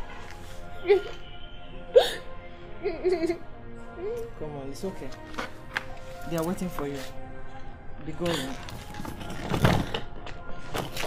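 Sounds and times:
film music with held notes: 0.0s - 11.0s
woman sobbing: 0.8s - 1.2s, 1.9s - 4.3s.

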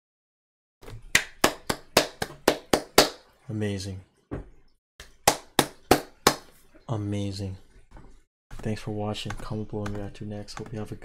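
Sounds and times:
person clapping hands: 1.1s - 3.2s, 5.2s - 6.5s.

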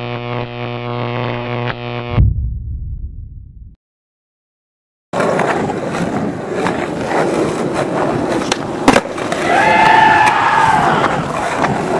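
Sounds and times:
skateboard clacking on ground: 5.2s - 9.6s, 11.0s - 11.9s
skateboard wheels rolling on pavement: 5.2s - 11.9s.

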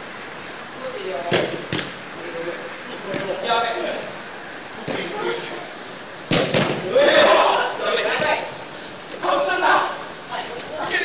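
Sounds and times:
ball kicked hard thuds: 6.3s - 6.9s
players shouting: 6.5s - 11.0s.

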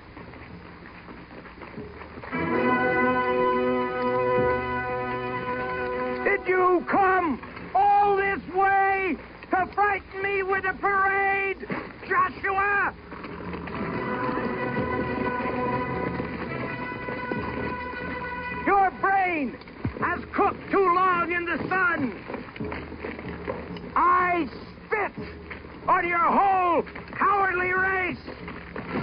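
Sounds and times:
held horn tones: 2.3s - 8.6s, 12.2s - 28.0s
ram's horn blasts: 2.3s - 29.0s.

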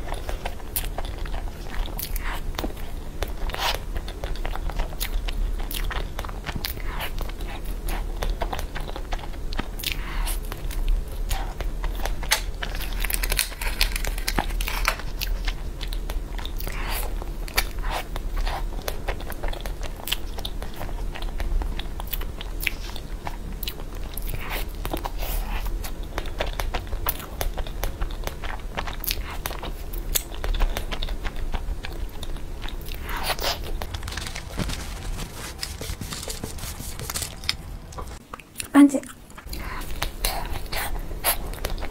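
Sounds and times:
biting and chewing cake: 0.0s - 41.9s
steady low hum: 0.0s - 41.9s.

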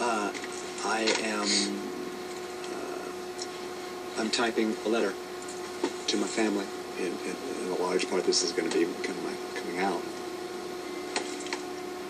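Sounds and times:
steady hum: 0.0s - 12.0s.

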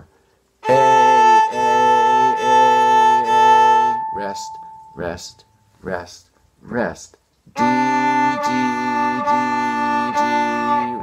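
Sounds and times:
viola bowed strokes: 0.6s - 5.1s, 7.6s - 11.0s.

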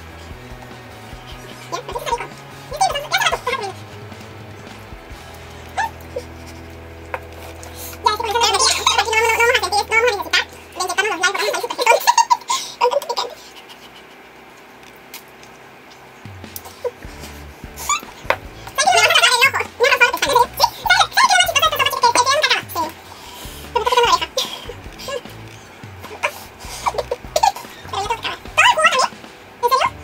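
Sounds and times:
background music: 0.0s - 12.3s, 16.2s - 30.0s
women laughing and giggling: 10.8s - 14.6s, 23.7s - 25.3s, 26.0s - 28.7s.

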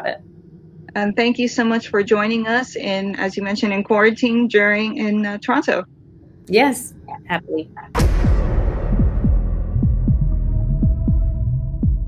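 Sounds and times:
humming drone: 0.0s - 3.8s
deep falling bass thumps: 7.8s - 12.0s.

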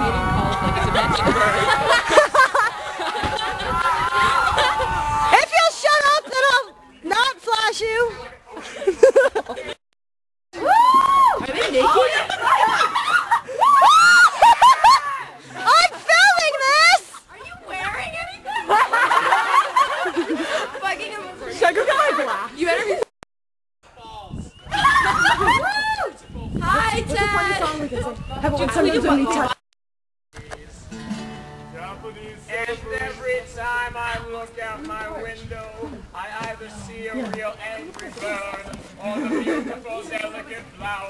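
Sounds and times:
people shrieking and squealing: 0.0s - 6.4s, 10.6s - 17.2s, 24.6s - 26.2s
acoustic guitar strummed: 30.9s - 32.6s.

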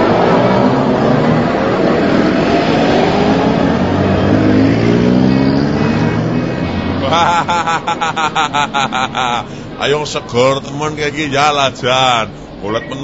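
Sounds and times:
vehicle engine accelerating: 0.0s - 9.2s
road noise: 0.0s - 13.0s.

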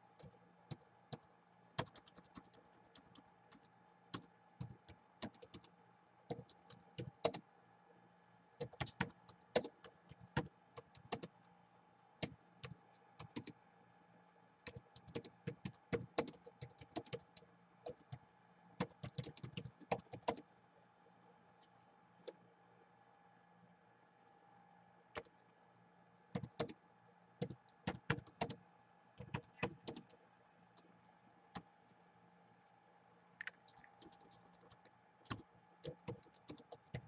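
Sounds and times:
faint steady hum: 0.0s - 37.0s
laptop keyboard typing: 0.2s - 5.7s, 6.3s - 7.5s, 8.6s - 11.6s, 12.2s - 13.6s, 14.6s - 20.5s, 25.1s - 25.4s, 26.3s - 26.8s, 27.4s - 28.6s, 29.2s - 31.7s, 33.4s - 37.0s.

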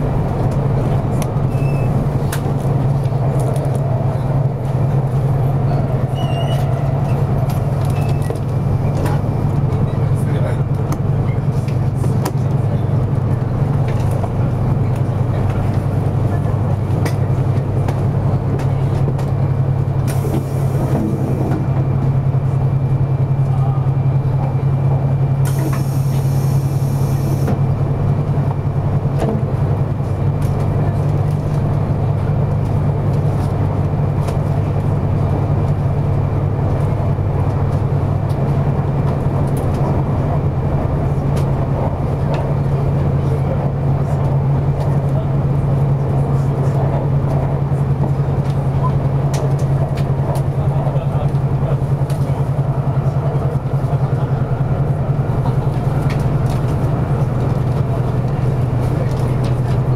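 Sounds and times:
track running noise: 0.0s - 59.9s
train cabin rumble and hum: 0.0s - 59.9s.

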